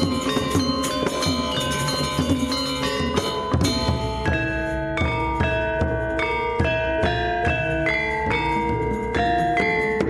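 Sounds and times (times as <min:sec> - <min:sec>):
metallophones and gongs ringing: 0:00.0 - 0:10.0.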